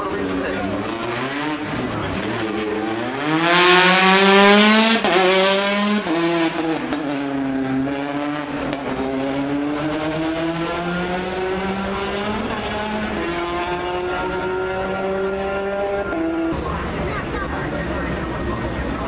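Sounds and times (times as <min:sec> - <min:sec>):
rally car engine at full throttle: 0:00.0 - 0:19.0.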